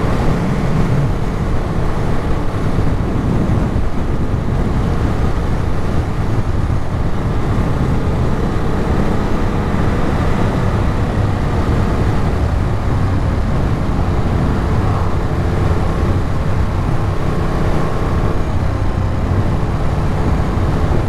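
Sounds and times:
motorcycle engine cruising: 0:00.0 - 0:21.0
wind noise: 0:00.0 - 0:21.0.

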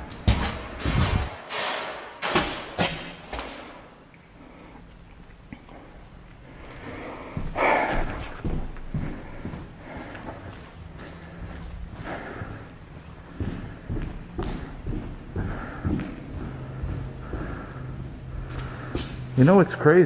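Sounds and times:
footsteps on concrete floor: 0:00.0 - 0:19.9.

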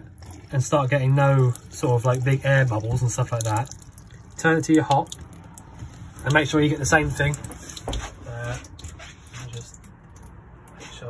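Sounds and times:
water pump humming: 0:00.0 - 0:09.9.

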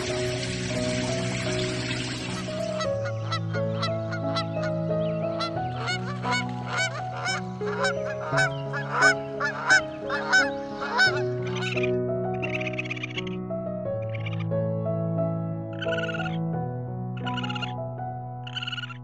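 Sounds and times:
soft background music: 0:00.0 - 0:19.0
geese honking: 0:02.2 - 0:13.4, 0:15.8 - 0:16.4, 0:17.2 - 0:17.7.

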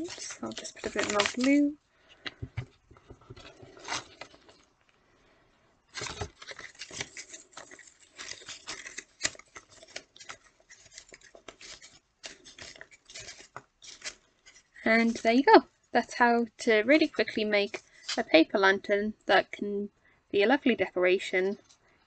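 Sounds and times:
paper rustling and crinkling: 0:00.0 - 0:04.9, 0:05.9 - 0:15.5.

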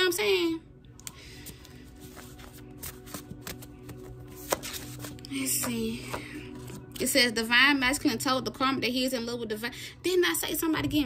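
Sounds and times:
index cards being shuffled: 0:01.0 - 0:06.8.

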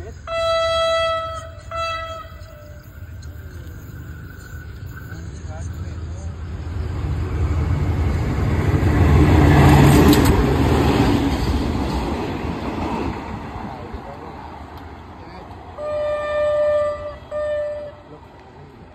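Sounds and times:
diesel locomotive rumble: 0:00.0 - 0:18.9
rolling freight wagons: 0:00.0 - 0:18.9.

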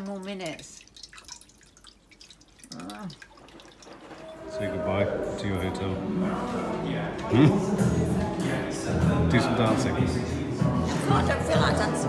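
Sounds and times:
water dripping into metal pot: 0:00.0 - 0:04.7.

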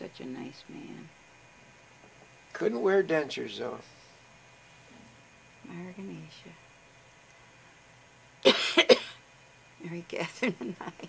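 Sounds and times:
person coughing: 0:08.4 - 0:09.2.

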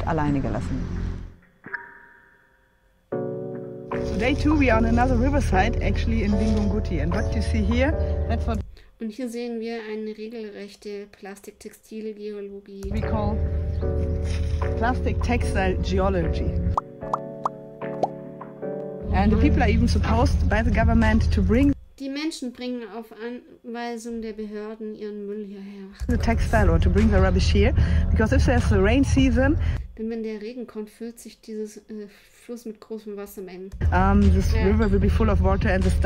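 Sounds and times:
soft background music: 0:00.0 - 0:36.0
rising plop sound effects: 0:01.7 - 0:02.4, 0:16.8 - 0:18.2
soft electronic chime: 0:01.7 - 0:03.0.

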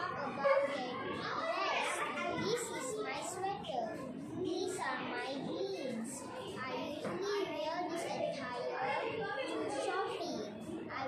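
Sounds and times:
children's voices: 0:00.0 - 0:11.0
girl speaking: 0:00.0 - 0:11.0.

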